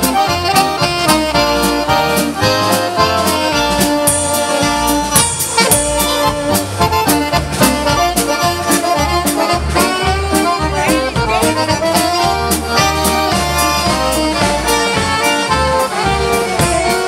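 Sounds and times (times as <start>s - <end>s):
bass: 0.0s - 17.0s
drum kit dance beat: 0.0s - 17.0s
piano accordion: 0.0s - 17.0s.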